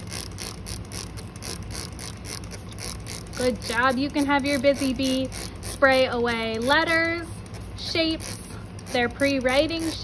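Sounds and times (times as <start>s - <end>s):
spray bottle squirting water: 0.0s - 10.0s.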